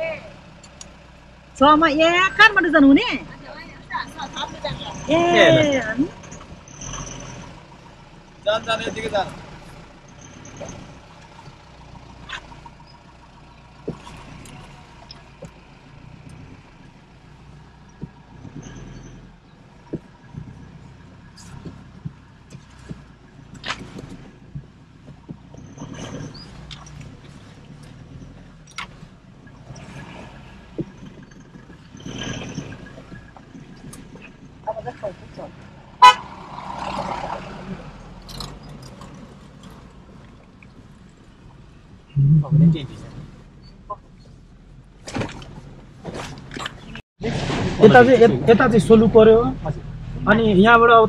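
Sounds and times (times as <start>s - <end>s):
vehicle knocks and rattles: 0.0s - 36.3s, 37.8s - 47.0s
engine and road rumble: 0.0s - 51.0s.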